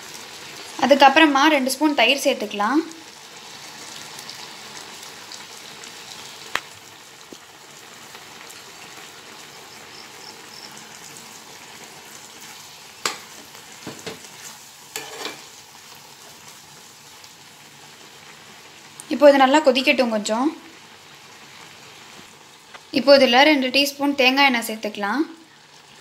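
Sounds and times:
ladle knocking and scraping pan: 0:14.9 - 0:15.4.

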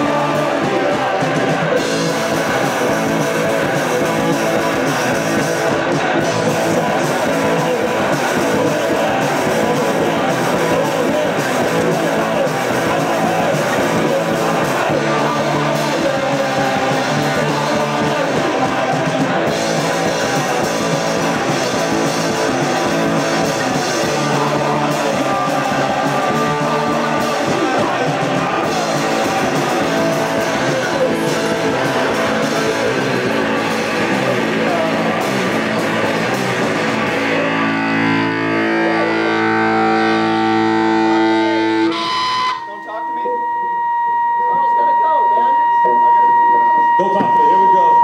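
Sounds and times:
drums playing hard: 0:00.0 - 0:42.8, 0:46.5 - 0:48.0
bass guitar: 0:00.0 - 0:48.0
distorted electric guitar: 0:00.0 - 0:48.0
high-pitched amplifier tone: 0:00.0 - 0:48.0.

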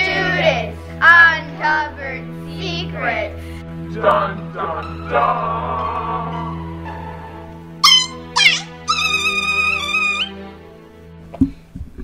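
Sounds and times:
background music: 0:00.0 - 0:11.7
dog-like yelps and whine: 0:07.8 - 0:10.3.

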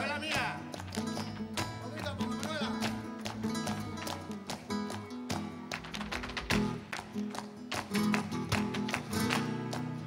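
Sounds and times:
flamenco acoustic guitar: 0:00.0 - 0:10.0.

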